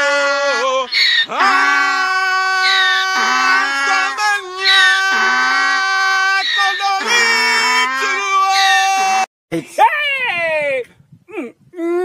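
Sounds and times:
donkey braying: 0:00.0 - 0:09.3
man screaming long notes: 0:00.0 - 0:09.3.

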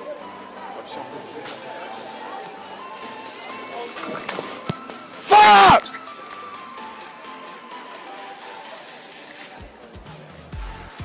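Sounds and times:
restaurant voices: 0:00.0 - 0:10.5
background music: 0:00.0 - 0:11.0.

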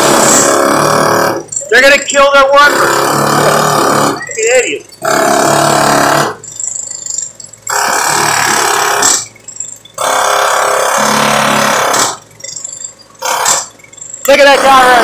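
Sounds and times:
loud power tool running: 0:00.0 - 0:06.4, 0:07.6 - 0:09.3, 0:10.0 - 0:12.2.

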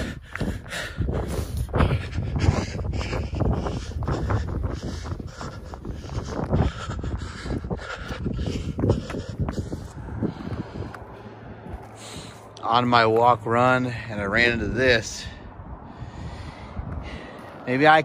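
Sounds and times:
hard breathing: 0:00.0 - 0:12.6, 0:13.7 - 0:17.7
wind rumbling on microphone: 0:00.0 - 0:18.0
footfalls on pavement: 0:03.0 - 0:13.4.

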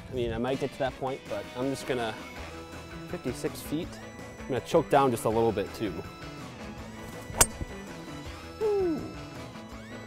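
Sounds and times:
background music: 0:00.4 - 0:10.0
golf club striking ball: 0:07.1 - 0:07.8.

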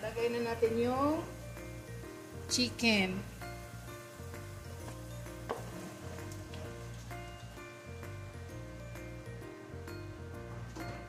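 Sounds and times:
background music: 0:00.0 - 0:11.0
chicken sizzling in a pot: 0:00.0 - 0:11.0.

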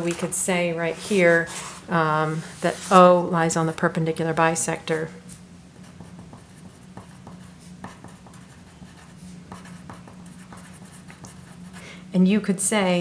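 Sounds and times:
pencil writing on paper: 0:05.8 - 0:11.8.

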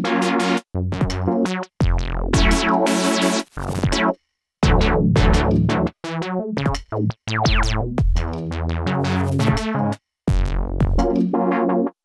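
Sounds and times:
filtered synthesizer notes: 0:00.0 - 0:12.0.

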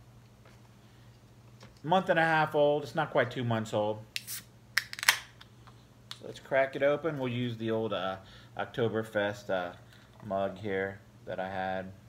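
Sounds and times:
can opening hiss: 0:04.1 - 0:05.3
can pull tab clicks: 0:04.2 - 0:05.3.

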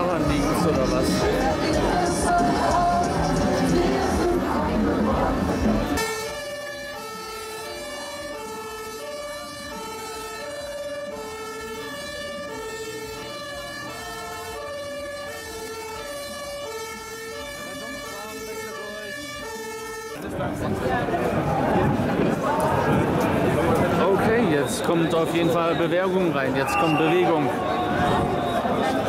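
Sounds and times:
two-tone emergency siren: 0:00.0 - 0:20.8, 0:24.0 - 0:29.0.

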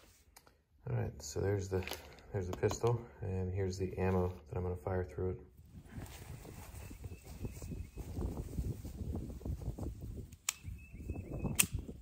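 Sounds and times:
wind gusting over microphone: 0:05.6 - 0:12.0
sharp clicks: 0:10.3 - 0:10.8, 0:11.4 - 0:12.0.

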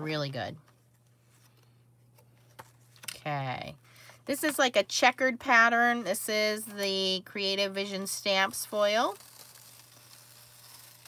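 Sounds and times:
foil sheets rustling: 0:08.4 - 0:11.0.

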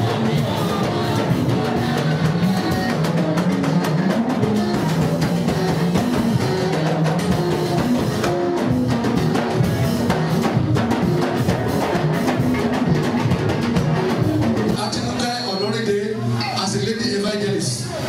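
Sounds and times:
band dance music: 0:00.0 - 0:18.0
drum kit steady beat: 0:00.0 - 0:18.0.

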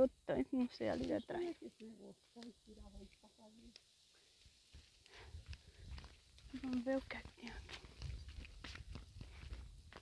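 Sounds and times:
dry leaves and twigs crackling: 0:00.0 - 0:10.0.

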